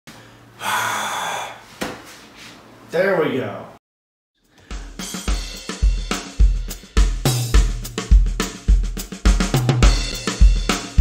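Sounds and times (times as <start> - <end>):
man's breathy gasp: 0.6 - 1.7.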